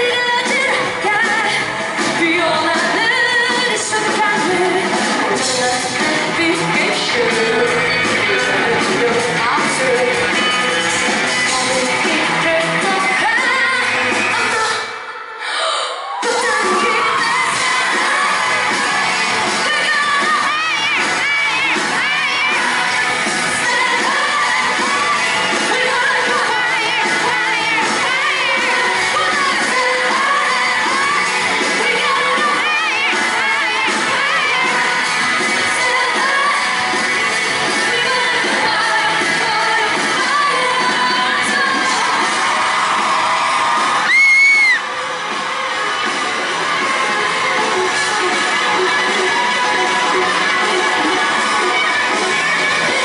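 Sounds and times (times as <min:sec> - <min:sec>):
indie rock band playing live: 0:00.0 - 0:15.0, 0:16.2 - 0:53.0
crowd noise: 0:00.0 - 0:53.0
high-pitched scream: 0:41.8 - 0:45.0.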